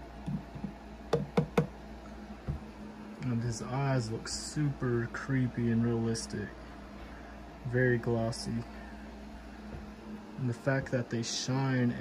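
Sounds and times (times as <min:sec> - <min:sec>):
knuckles knocking on hollow plastic: 0:00.2 - 0:01.8, 0:02.4 - 0:02.7
soft thump: 0:02.4 - 0:02.7.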